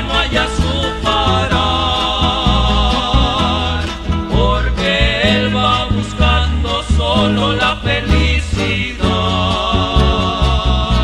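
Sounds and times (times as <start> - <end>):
acoustic guitar ensemble with bass: 0.0 - 11.0.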